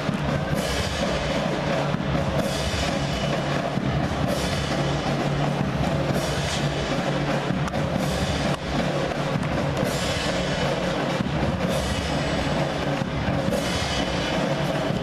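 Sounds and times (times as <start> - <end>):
drums beating: 0.0 - 15.0
marching band playing: 0.0 - 15.0.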